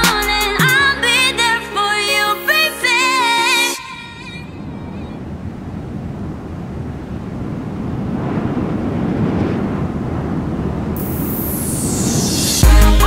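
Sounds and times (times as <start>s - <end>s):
wind rushing: 4.3s - 12.7s.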